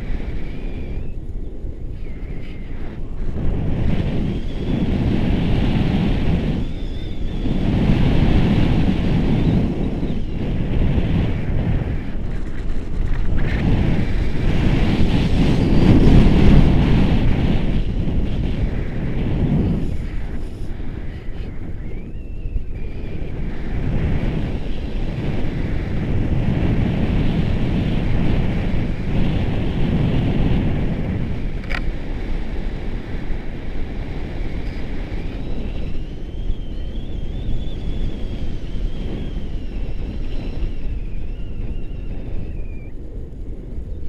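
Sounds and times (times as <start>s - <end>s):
wind buffeting microphone: 0.0s - 44.0s
faint thin whistle: 0.3s - 3.0s, 6.5s - 7.6s, 19.7s - 23.2s, 34.6s - 43.0s.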